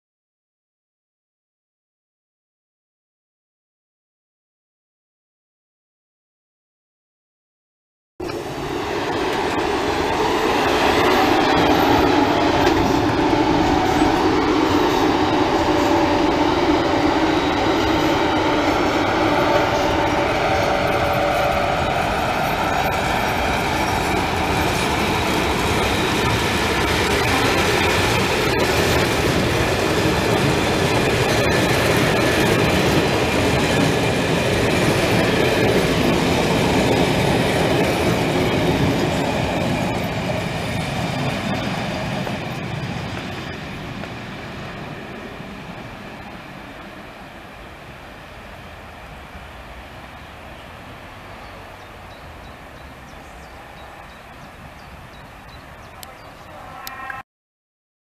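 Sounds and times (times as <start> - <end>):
train wheels rumbling on rails: 8.2 - 57.2.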